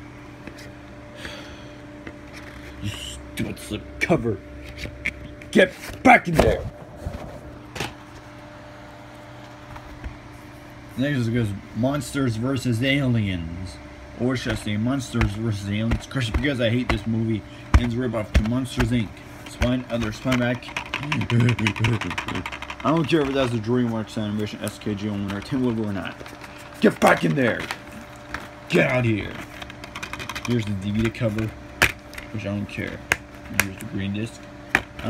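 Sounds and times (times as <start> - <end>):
steady low hum: 0.0 - 35.0
dvd cases knocking and clicking: 14.4 - 23.6, 24.6 - 33.9, 34.7 - 35.0
boy laughing: 21.0 - 22.4.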